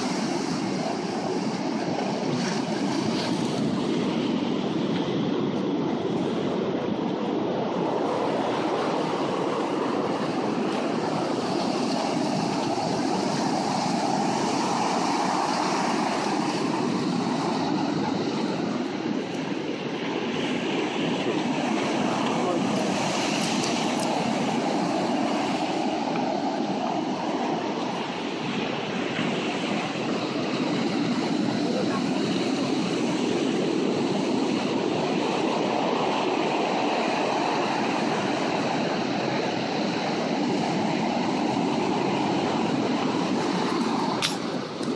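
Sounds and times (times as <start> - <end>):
ocean surf breaking on beach: 0.0 - 44.9
wind rumbling on microphone: 0.0 - 44.9.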